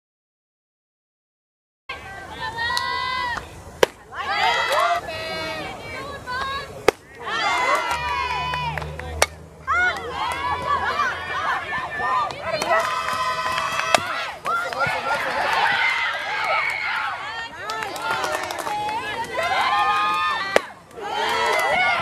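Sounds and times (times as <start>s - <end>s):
crowd shouting and chanting: 1.9s - 22.0s.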